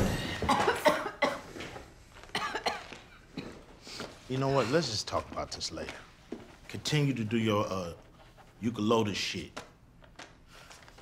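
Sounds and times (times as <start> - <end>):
person coughing: 0.0 - 1.6, 2.3 - 3.7.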